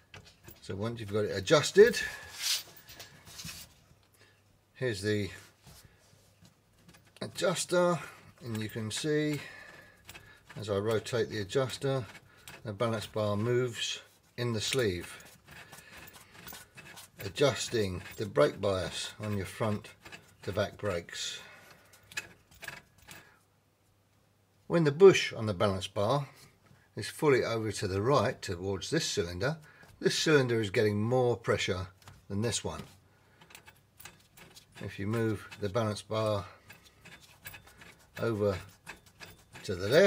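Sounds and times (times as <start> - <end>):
knob turning with faint rubbing: 0.0 - 3.8, 5.2 - 23.4, 29.1 - 40.0
man speaking: 4.8 - 5.4, 10.6 - 15.2, 27.0 - 32.9, 34.8 - 36.6, 38.2 - 38.7, 39.7 - 40.0.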